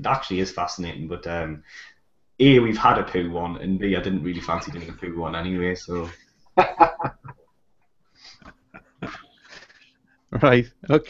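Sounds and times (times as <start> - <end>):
man chuckling quietly: 6.6 - 7.4, 8.3 - 9.6.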